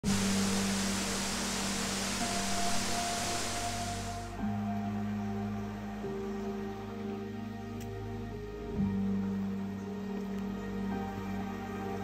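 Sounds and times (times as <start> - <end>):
waterfall rushing: 0.0 - 4.4
soft ambient music: 0.0 - 12.0.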